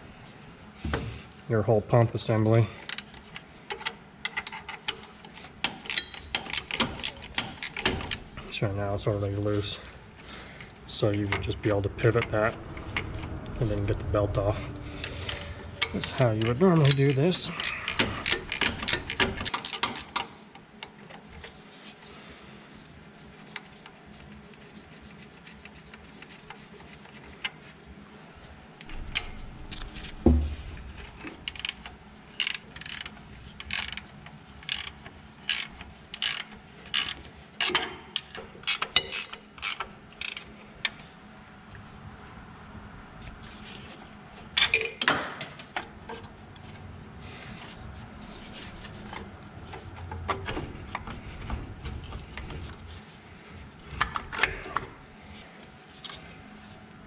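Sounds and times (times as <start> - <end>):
wrench ratcheting on bolt: 5.8 - 8.2, 16.8 - 20.2, 31.5 - 40.5.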